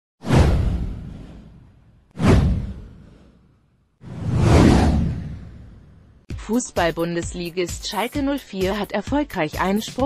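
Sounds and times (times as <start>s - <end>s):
cinematic whoosh with low rumble: 0.2s - 6.3s.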